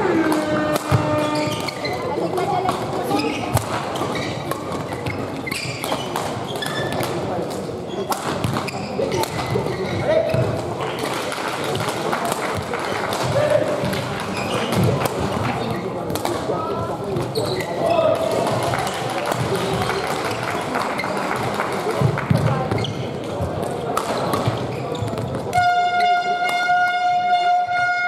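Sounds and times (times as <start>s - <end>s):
high horn-like tone: 0.0s - 1.6s, 25.6s - 28.0s
players' footwork: 0.0s - 28.0s
voices in a hall: 0.0s - 28.0s
racket hitting shuttlecock: 0.1s - 9.7s, 16.1s - 16.5s, 23.6s - 25.7s.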